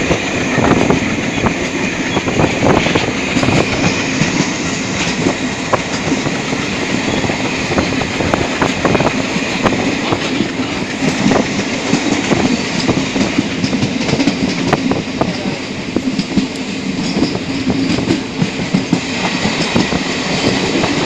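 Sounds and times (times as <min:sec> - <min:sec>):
train clicks and clatter: 0:00.0 - 0:21.0
train wheels rumbling on rail: 0:00.0 - 0:21.0.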